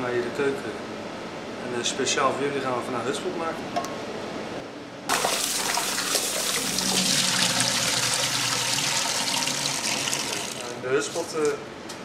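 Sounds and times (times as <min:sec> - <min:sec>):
tap water running into a pot: 0:05.1 - 0:11.6.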